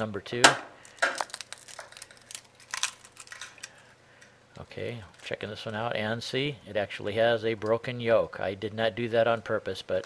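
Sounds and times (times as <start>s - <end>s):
egg cracking on ceramic bowl: 0.6s - 3.8s
eggshell crackling: 0.6s - 5.8s.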